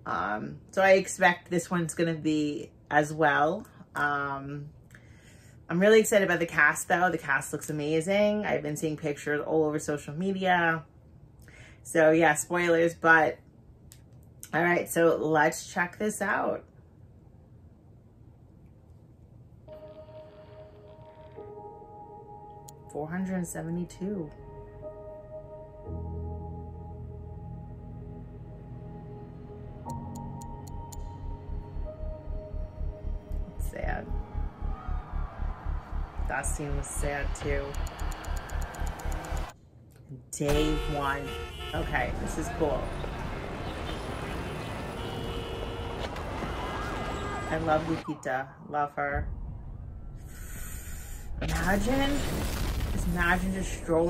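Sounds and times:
ringing musical drone: 28.1s - 39.6s
city traffic rumble: 31.6s - 39.6s, 40.2s - 48.2s
emergency vehicle siren: 32.0s - 39.6s, 41.8s - 48.3s.

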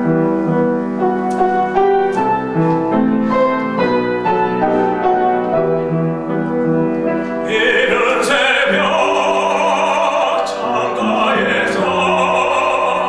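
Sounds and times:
grand piano playing: 0.0s - 13.0s.

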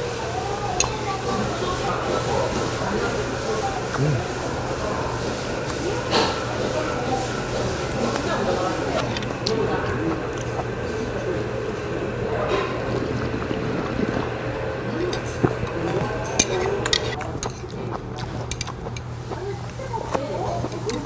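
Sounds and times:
steady low hum: 0.0s - 21.0s
background voices: 0.2s - 17.4s
slurping soup: 0.8s - 21.0s
chopsticks clinking on bowl: 14.9s - 19.1s.

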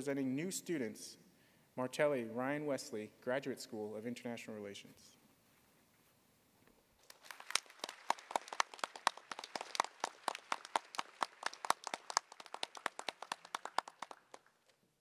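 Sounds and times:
audience clapping: 7.0s - 14.9s.

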